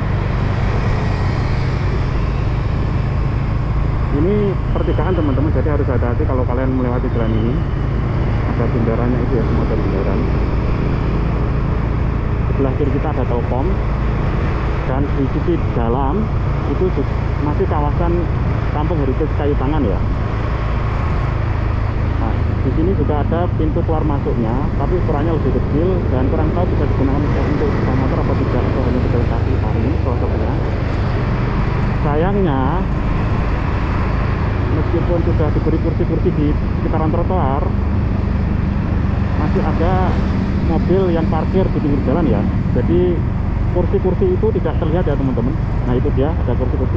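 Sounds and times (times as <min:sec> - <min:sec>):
road and wind noise: 0:00.0 - 0:46.9.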